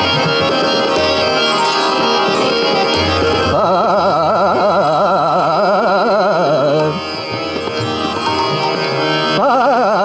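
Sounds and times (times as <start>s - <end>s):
harmonium playing: 0.0s - 10.0s
tabla drumming: 0.0s - 10.0s.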